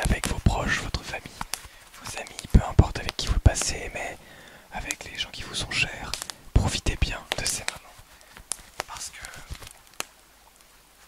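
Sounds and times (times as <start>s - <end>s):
close-miked whispering: 0.0s - 9.7s
sharp clicks: 4.4s - 5.2s, 6.0s - 6.4s.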